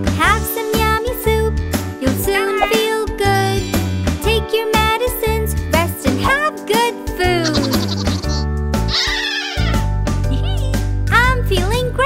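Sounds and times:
children's song backing music: 0:00.0 - 0:08.6, 0:10.1 - 0:12.0
squeaky cartoon sound effects: 0:02.3 - 0:02.9, 0:07.4 - 0:09.8.

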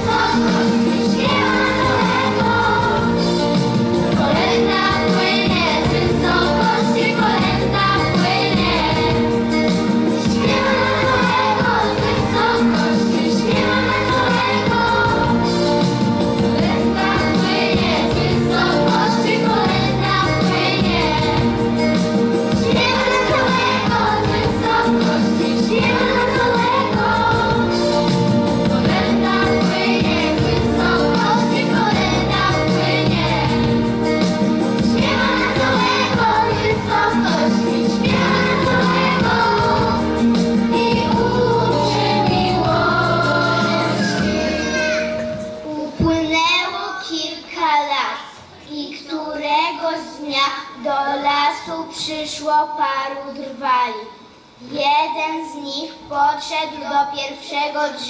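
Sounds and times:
instrumental accompaniment: 0:00.0 - 0:46.4
children's choir singing: 0:00.0 - 0:47.4.

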